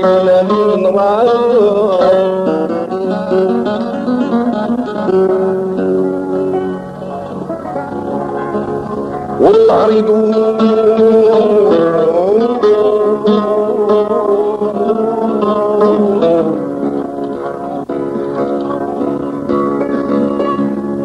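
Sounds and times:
plucked string instruments: 0.0s - 21.0s.

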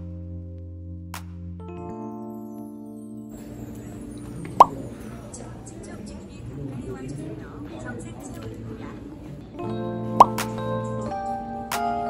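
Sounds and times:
background music notes: 0.0s - 5.6s, 9.4s - 12.0s
low background noise: 3.4s - 12.0s.

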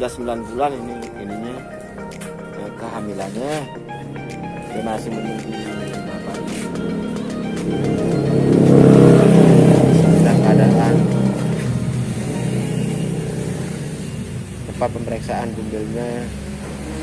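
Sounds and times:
motor vehicle passing: 1.3s - 17.0s.

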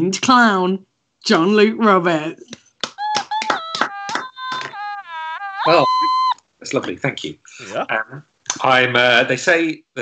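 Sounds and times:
sharp claps or taps: 2.8s - 4.8s.

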